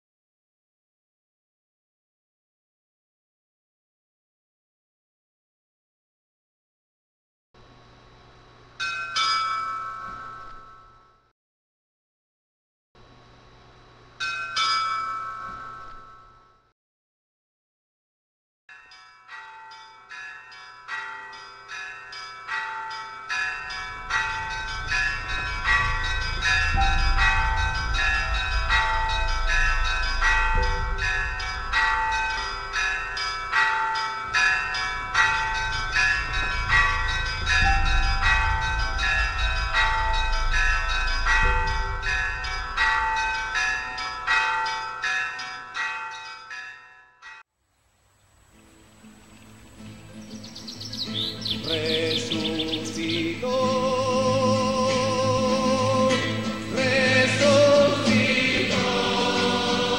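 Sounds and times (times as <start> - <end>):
bells ringing: 8.8 - 11.2, 14.2 - 16.7, 18.7 - 47.5, 50.6 - 59.9
low rumble: 24.0 - 33.1, 35.0 - 43.4.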